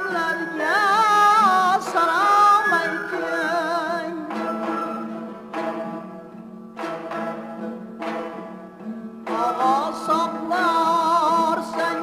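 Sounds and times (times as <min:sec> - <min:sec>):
string instruments playing: 0:00.0 - 0:12.0.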